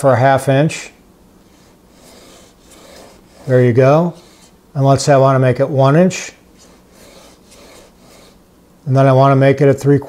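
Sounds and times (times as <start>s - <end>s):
pencil scratching on wood: 1.5s - 4.6s, 6.6s - 8.4s.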